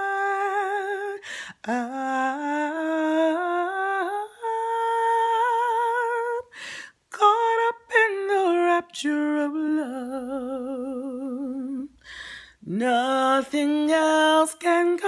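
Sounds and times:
woman singing wordlessly: 0.0 - 12.0, 12.6 - 15.0.

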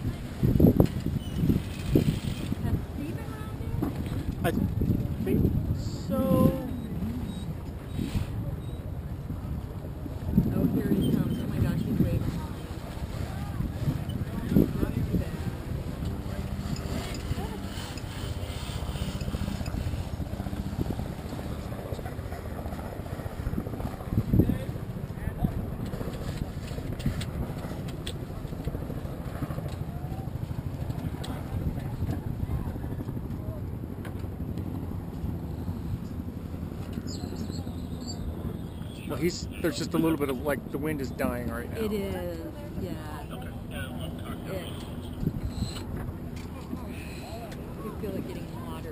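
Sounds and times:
motorboat engine running: 0.0 - 40.6, 41.2 - 48.9
water moving along hull: 0.0 - 48.9.

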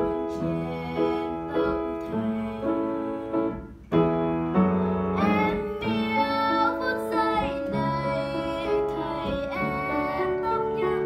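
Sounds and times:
girl singing a slow ballad: 0.0 - 11.0
upright piano chords: 0.0 - 11.0.

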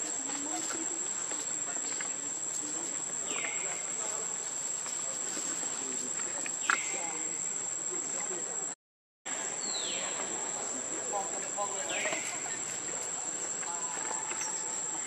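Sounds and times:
insects droning: 0.0 - 15.0.

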